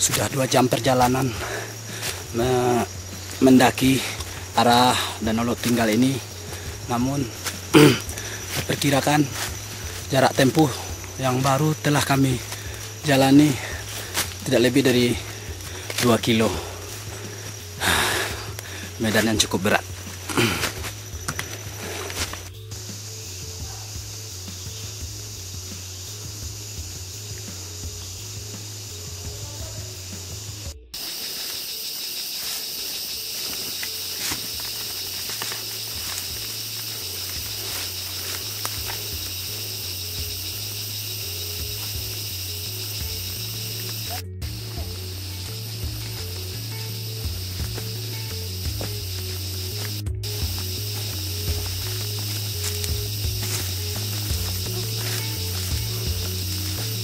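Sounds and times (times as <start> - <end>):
background music with bass: 0.0 - 31.8, 32.4 - 57.0
insect drone: 0.0 - 57.0.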